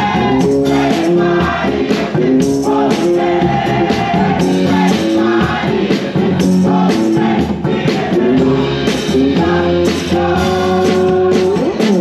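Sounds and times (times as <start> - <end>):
choir singing held notes: 0.0 - 11.6
drum and cymbal hits: 0.0 - 12.0
gospel band playing: 0.0 - 12.0.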